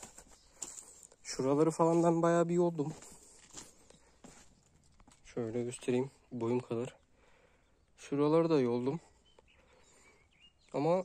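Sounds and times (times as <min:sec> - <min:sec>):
soft footsteps on dirt: 0:00.0 - 0:06.6.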